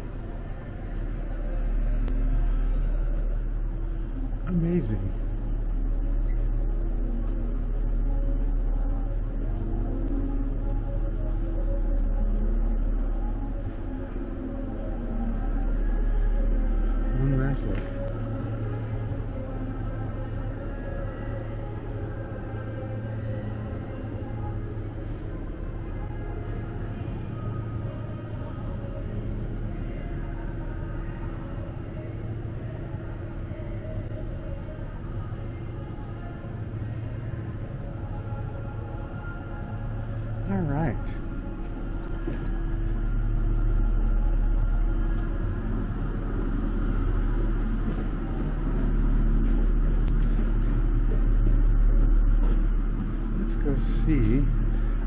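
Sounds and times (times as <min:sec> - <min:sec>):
steady low rumble: 0:00.0 - 0:55.0.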